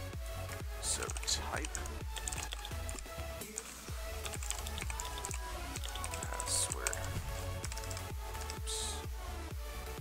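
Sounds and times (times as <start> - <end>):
background music with low beat: 0.0 - 10.0
computer keyboard typing: 0.9 - 8.7.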